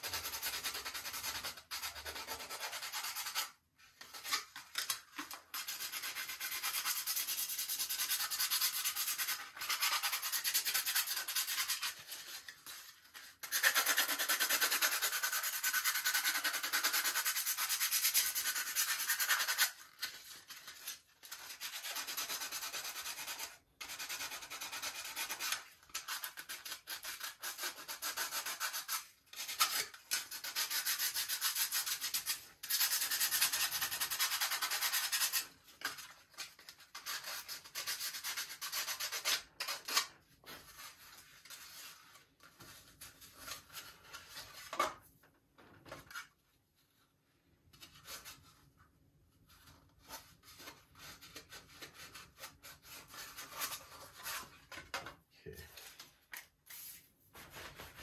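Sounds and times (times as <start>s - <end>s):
sandpaper rubbing by hand: 21.6s - 35.5s.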